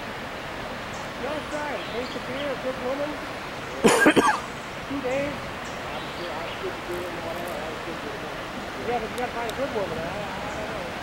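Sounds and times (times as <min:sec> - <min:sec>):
steady rushing hiss: 0:00.0 - 0:11.0
faint men talking: 0:04.9 - 0:11.0.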